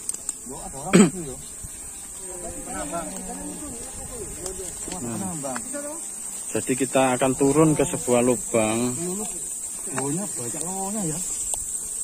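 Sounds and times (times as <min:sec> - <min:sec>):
insects droning: 0:00.0 - 0:12.0
men calling: 0:00.5 - 0:11.3.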